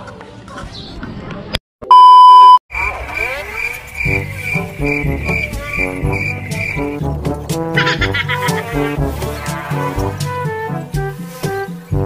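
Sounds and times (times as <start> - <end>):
test tone beep: 1.9 - 2.6
cricket chirp effect: 2.8 - 6.9.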